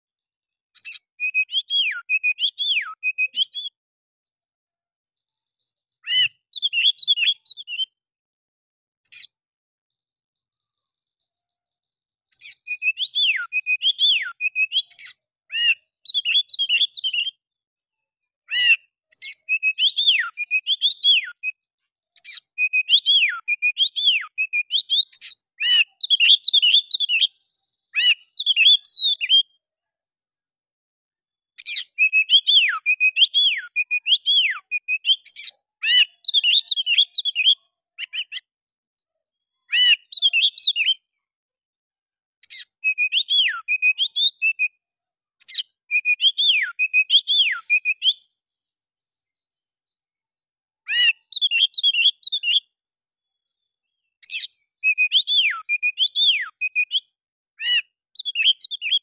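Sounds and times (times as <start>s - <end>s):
bird singing: 0.8s - 3.8s, 5.8s - 8.0s, 12.3s - 17.4s, 18.5s - 21.6s, 22.2s - 29.6s, 31.6s - 38.5s, 39.6s - 41.1s, 42.4s - 44.8s, 45.4s - 48.2s, 50.9s - 52.7s, 54.2s - 59.0s
songbird whistling: 0.8s - 3.8s, 6.0s - 8.0s, 9.1s - 9.3s, 12.3s - 17.4s, 18.5s - 21.6s, 22.2s - 27.3s, 27.9s - 29.5s, 31.6s - 38.4s, 39.7s - 41.1s, 42.4s - 44.8s, 45.4s - 48.2s, 50.9s - 52.7s, 54.2s - 57.0s, 57.6s - 59.0s.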